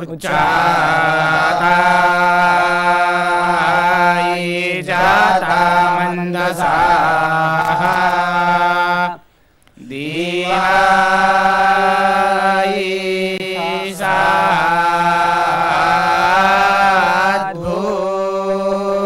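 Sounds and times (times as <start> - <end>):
young men chanting in unison: 0.0 - 9.2, 9.8 - 19.0.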